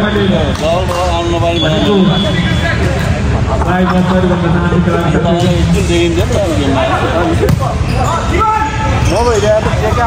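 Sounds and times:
man talking: 0:03.6 - 0:07.4.

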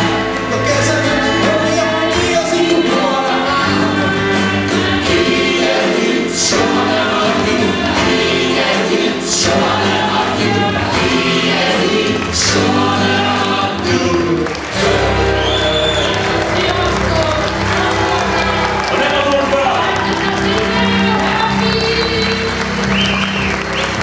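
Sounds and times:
group singing into microphones: 0:00.0 - 0:23.0
amplified backing music: 0:00.0 - 0:24.0.

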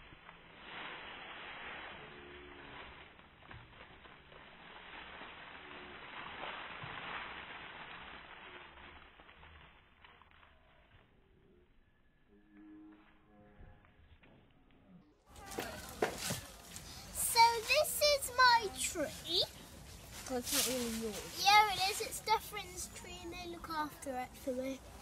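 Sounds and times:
dry leaves rustling and crackling: 0:00.0 - 0:11.0, 0:15.3 - 0:25.0.

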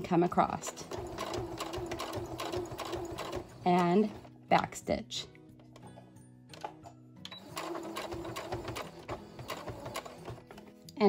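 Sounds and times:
soft background music: 0:00.0 - 0:11.0
sewing machine stitching: 0:00.3 - 0:04.3, 0:07.3 - 0:10.6.

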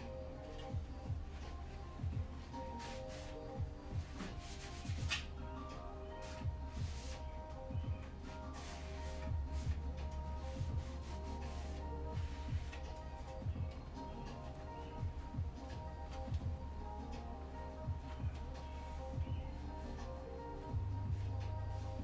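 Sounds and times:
steady deep beat: 0:00.0 - 0:22.0.

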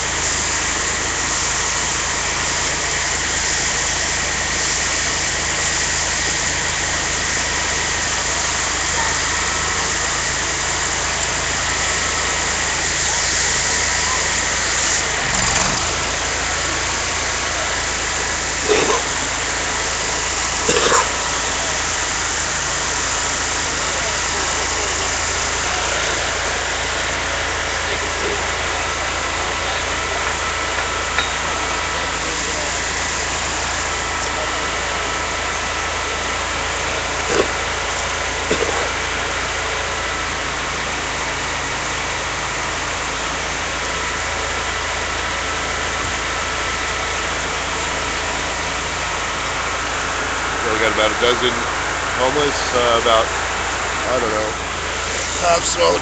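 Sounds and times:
engine running steadily: 0:00.0 - 0:56.0.

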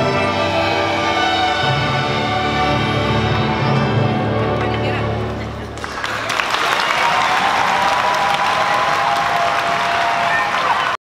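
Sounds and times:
string orchestra chord: 0:00.0 - 0:05.6
audience applause: 0:05.6 - 0:11.0.

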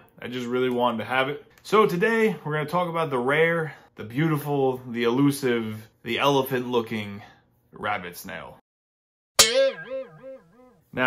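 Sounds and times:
cartoon boing sound effect: 0:09.4 - 0:10.7.

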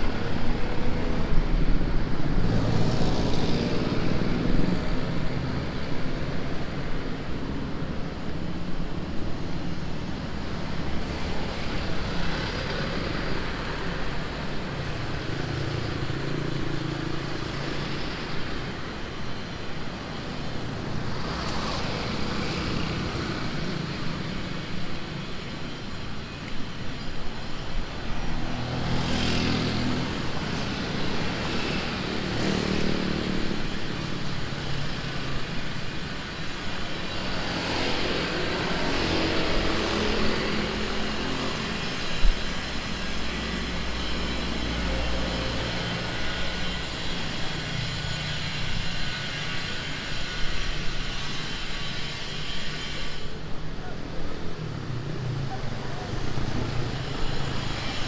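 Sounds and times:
motorcycles and cars passing: 0:00.0 - 0:58.0.

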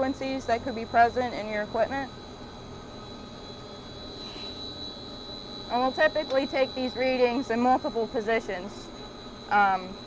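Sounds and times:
electric pumps humming: 0:00.0 - 0:10.0
high-pitched whine: 0:00.0 - 0:10.0.

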